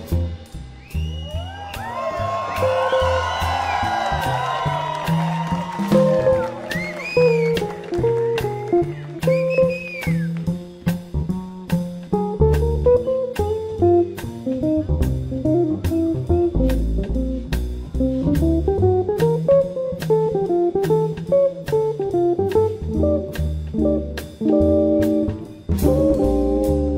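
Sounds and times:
bass guitar: 0.0 - 26.9
drum beat: 0.8 - 26.9
guitar melody: 4.2 - 26.9.

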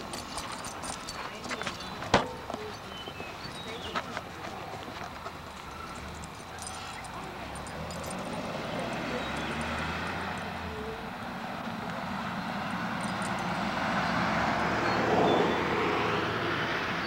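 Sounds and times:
pickup truck driving past: 5.9 - 17.0.

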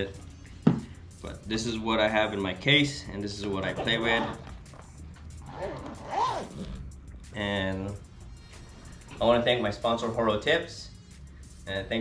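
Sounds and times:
background music: 0.0 - 12.0
zipper being pulled: 3.6 - 4.8, 5.4 - 6.9.

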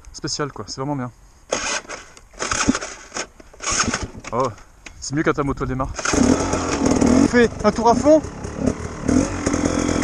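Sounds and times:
dirt bike start attempts: 1.5 - 4.7, 5.8 - 10.0.

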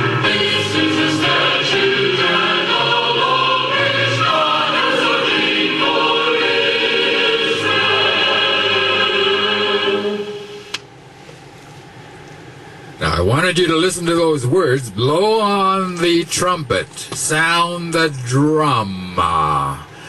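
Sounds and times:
choir singing in harmony: 0.0 - 10.7
low background noise: 0.0 - 20.0.

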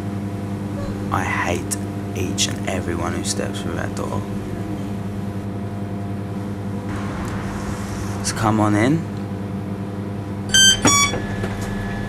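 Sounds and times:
low electrical hum: 0.0 - 12.0
two-note electronic door chime: 10.5 - 12.0.

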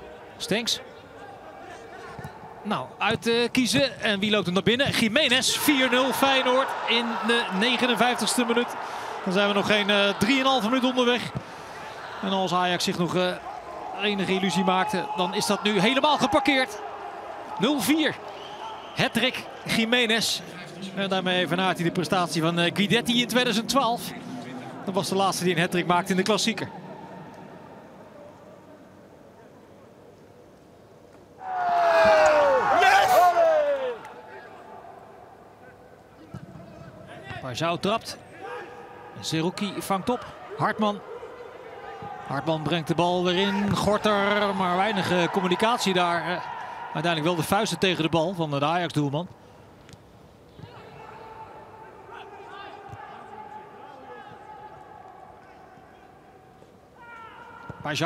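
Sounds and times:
faint background noise: 0.0 - 58.0
distant shouts of players: 31.4 - 35.2.

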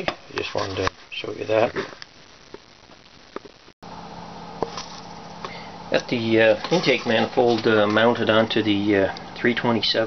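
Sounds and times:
steady low hum: 0.1 - 10.0.

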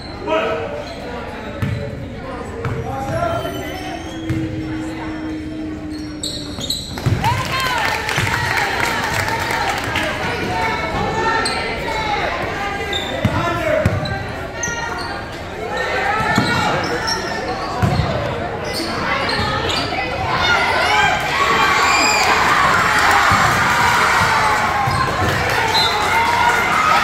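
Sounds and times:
voices and shouts echoing: 0.0 - 27.0.

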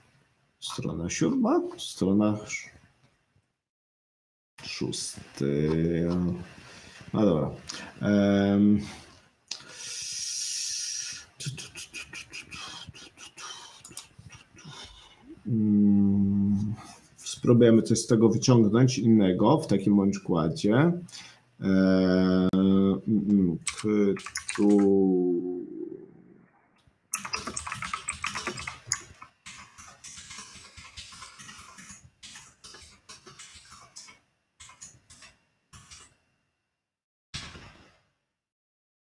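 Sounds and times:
man humming hesitantly: 14.8 - 16.9
typing on computer keyboard: 23.7 - 24.9, 27.2 - 36.2.

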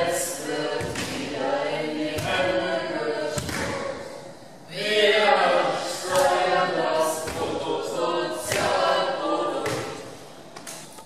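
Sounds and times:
voices singing a cappella: 0.0 - 10.4.

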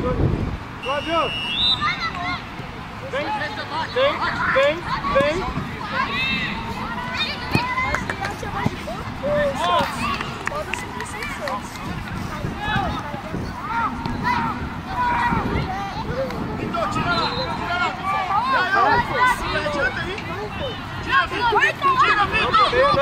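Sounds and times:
outdoor background noise: 0.0 - 23.0
players calling and shouting: 0.0 - 23.0.

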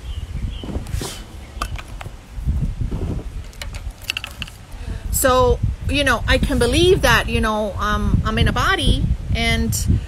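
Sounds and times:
low outdoor rumble: 0.0 - 10.0
phone handling rustle: 3.4 - 4.7.

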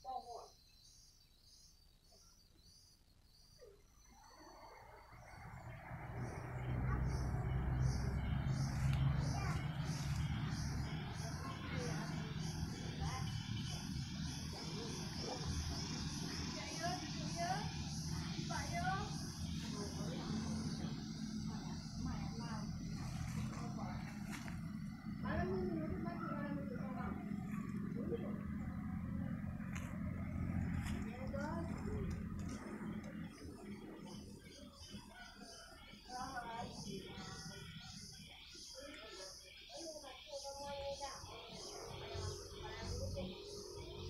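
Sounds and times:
low outdoor rumble: 4.2 - 38.4
people talking indistinctly: 6.6 - 44.0.

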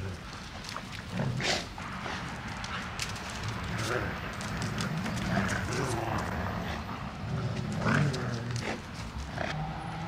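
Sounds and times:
dogs playing rough: 0.0 - 9.6.

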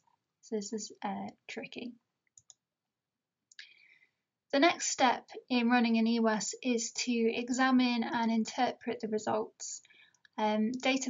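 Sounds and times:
faint in-breath: 3.6 - 4.2, 9.8 - 10.2.

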